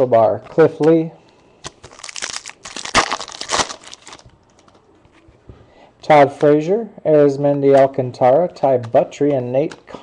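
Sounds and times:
wrapper crinkling and tearing: 1.6 - 4.8.

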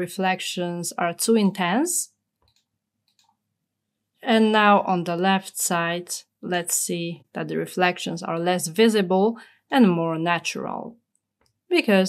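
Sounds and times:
computer mouse clicks: 2.3 - 3.4.

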